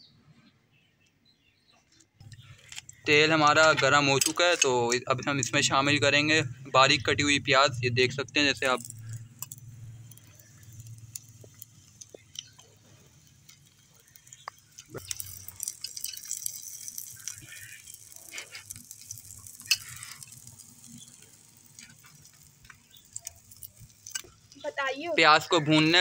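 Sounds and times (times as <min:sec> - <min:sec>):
small clicks: 0:08.6 - 0:24.6
onions sizzling in hot oil: 0:08.6 - 0:26.0.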